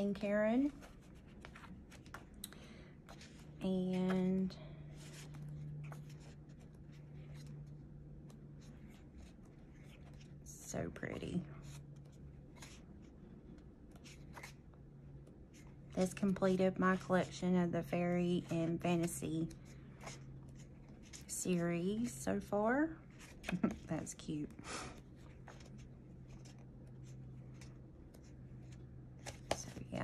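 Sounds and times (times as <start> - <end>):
steady low hum: 0.0 - 30.0
paper pages turning: 0.6 - 14.7, 18.4 - 21.4, 23.0 - 24.2, 25.0 - 30.0.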